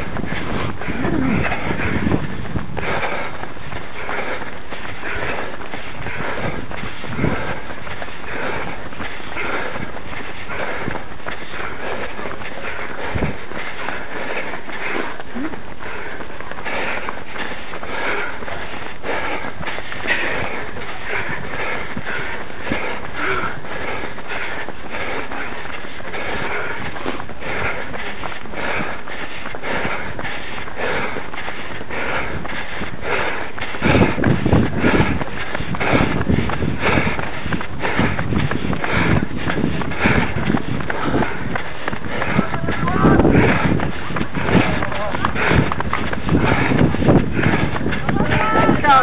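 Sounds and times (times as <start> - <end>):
running footsteps on tarmac: 0.0 - 49.0
wind buffeting microphone: 0.0 - 49.0.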